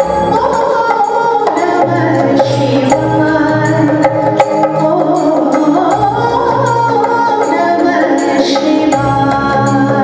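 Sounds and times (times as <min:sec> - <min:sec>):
percussion strokes: 0:00.0 - 0:10.0
woman singing into microphone: 0:00.0 - 0:10.0.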